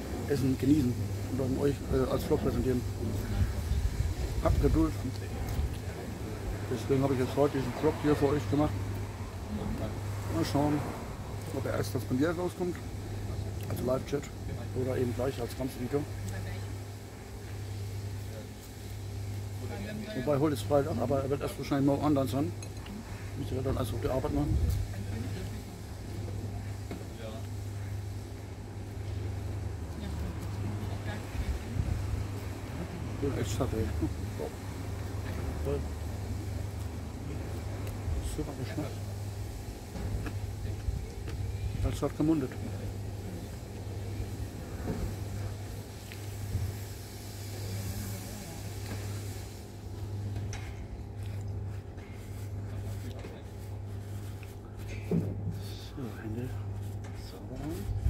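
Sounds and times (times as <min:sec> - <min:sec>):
outdoor background noise: 0:00.0 - 0:58.0
steady low hum: 0:00.0 - 0:58.0.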